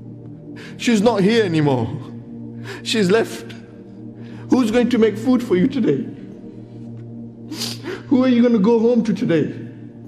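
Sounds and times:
soft sustained background music: 0:00.0 - 0:10.0
sharp intake of breath: 0:07.5 - 0:08.1.

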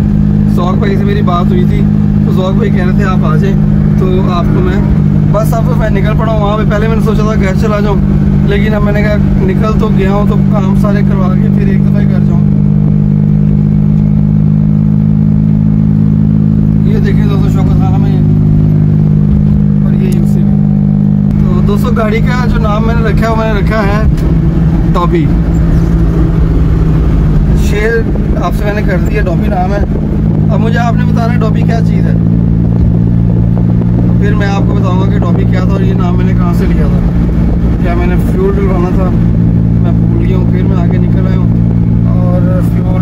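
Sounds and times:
car engine hum from cabin: 0:00.0 - 0:43.0
road noise: 0:00.0 - 0:43.0
person speaking: 0:00.6 - 0:12.5.

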